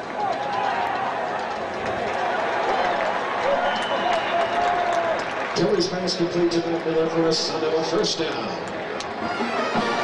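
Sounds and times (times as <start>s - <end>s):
stadium crowd yelling and cheering: 0.0s - 10.0s.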